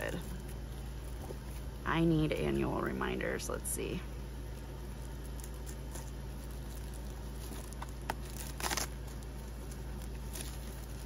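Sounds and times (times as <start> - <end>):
plastic crinkling: 4.3 - 11.0
scissors snipping cellophane: 7.6 - 9.0.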